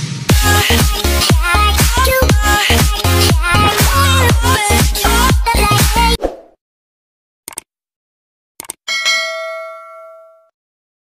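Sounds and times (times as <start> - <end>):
quick clicks: 7.5 - 7.7, 8.6 - 8.8
bright bell chime: 8.9 - 10.5.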